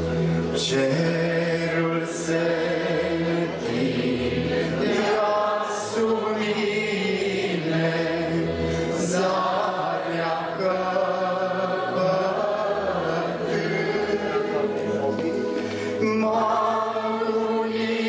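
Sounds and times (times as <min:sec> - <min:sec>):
congregation singing a hymn: 0:00.0 - 0:18.0.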